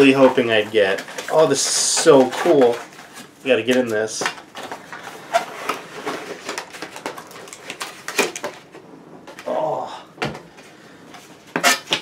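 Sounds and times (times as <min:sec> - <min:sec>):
cardboard scraping and rustling: 0:00.0 - 0:08.8.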